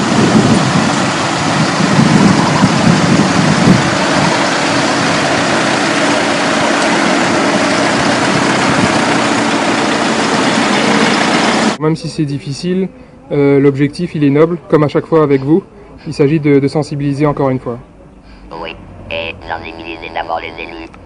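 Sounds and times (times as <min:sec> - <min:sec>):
car engine hum: 0:00.0 - 0:11.8
wind and road noise: 0:00.0 - 0:11.8, 0:15.1 - 0:21.0.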